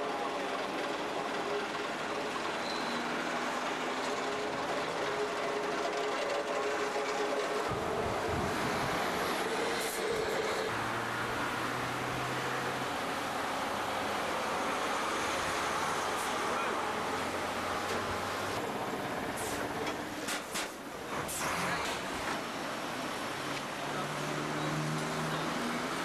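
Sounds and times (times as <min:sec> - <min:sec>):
heavy vehicle engines rumbling: 0:00.0 - 0:26.0
road traffic: 0:00.0 - 0:26.0.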